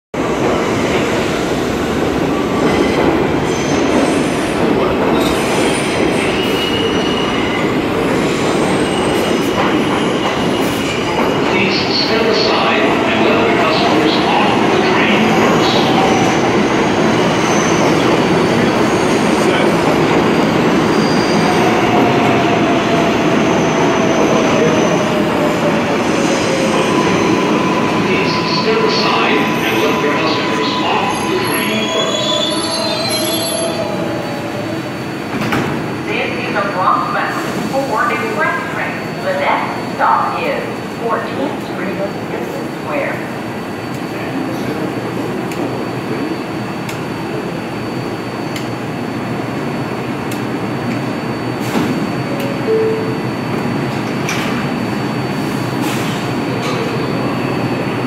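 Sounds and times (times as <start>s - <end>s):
subway train wheels rumbling on rail: 0.1s - 58.0s.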